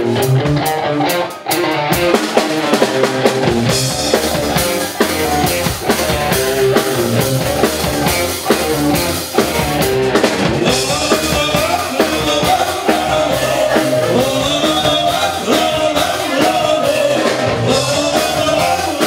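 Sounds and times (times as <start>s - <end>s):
drum kit: 0.0s - 19.0s
electric guitar: 0.0s - 19.0s
keyboard: 1.3s - 19.0s.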